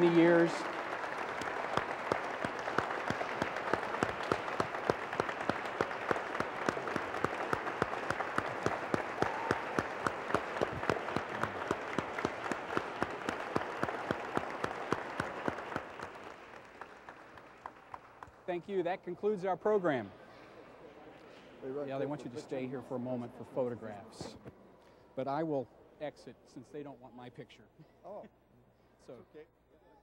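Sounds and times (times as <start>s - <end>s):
crowd applauding: 0.0s - 18.5s
sharp close claps: 0.0s - 18.5s.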